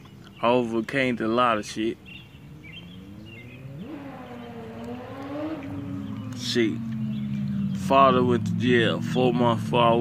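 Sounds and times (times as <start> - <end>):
bird chirps: 0.0 - 9.3
engine humming: 0.0 - 10.0.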